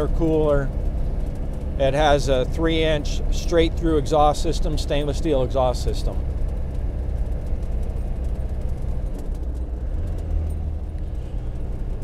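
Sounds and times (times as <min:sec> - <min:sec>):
diesel engine drone: 0:00.0 - 0:12.0
road noise: 0:00.0 - 0:12.0.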